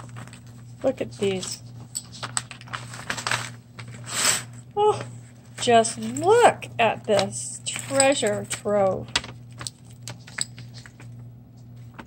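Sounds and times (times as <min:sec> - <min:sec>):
tissue paper rustling: 0:00.0 - 0:06.2.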